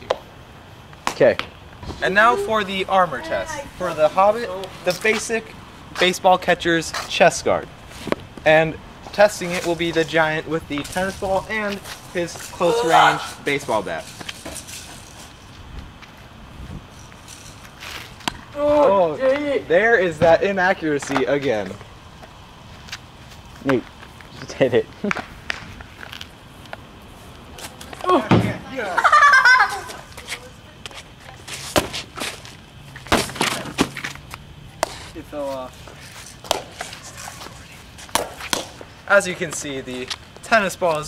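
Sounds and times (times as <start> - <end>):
wind rumble: 1.5 - 20.8.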